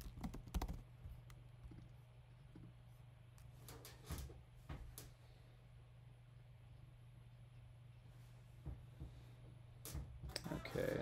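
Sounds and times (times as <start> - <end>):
keyboard typing: 0.0 - 0.9
steady low hum: 0.0 - 11.0.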